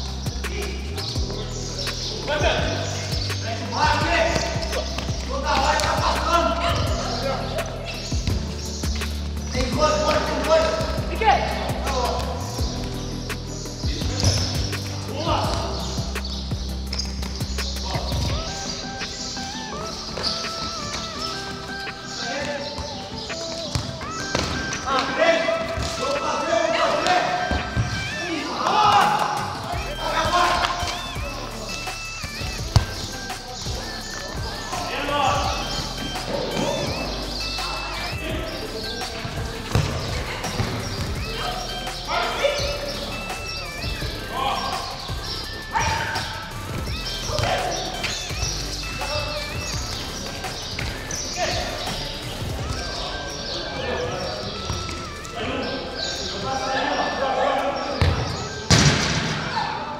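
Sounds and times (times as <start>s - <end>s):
background music with bass: 0.0s - 59.9s
players' voices: 0.0s - 59.9s
ball kicked and bouncing on concrete: 1.2s - 6.9s, 12.1s - 18.5s, 19.8s - 26.2s, 32.3s - 34.3s, 39.2s - 41.5s, 58.0s - 59.4s.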